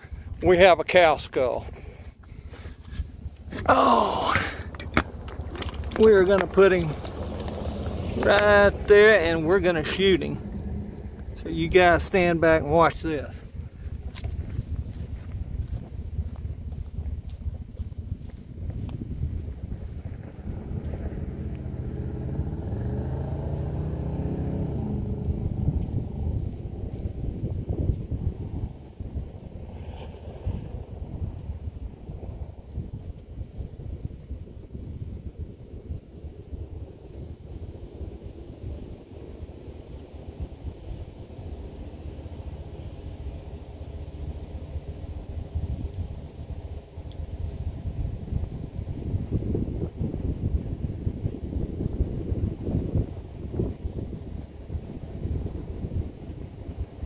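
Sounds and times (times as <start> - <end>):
wind on microphone: 0.0 - 57.0
low rumble: 1.6 - 57.0
engine hum: 1.7 - 57.0.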